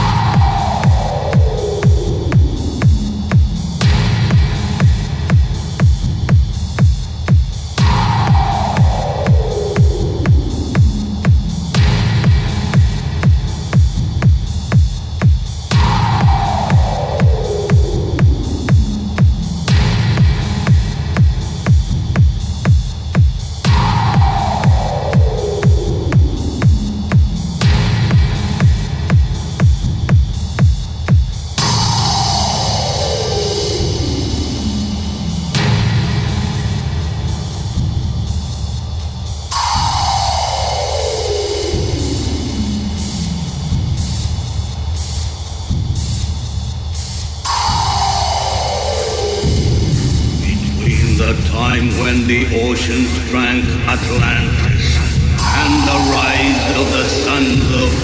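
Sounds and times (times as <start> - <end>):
kick drum: 0.0 - 32.8, 35.5 - 40.4, 41.6 - 58.0
experimental electronic music: 0.0 - 58.0
low bass drone: 49.4 - 58.0.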